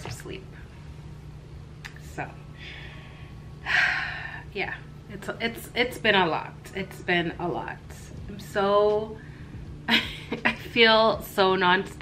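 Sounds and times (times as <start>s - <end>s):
woman breathing in: 2.6s - 4.5s.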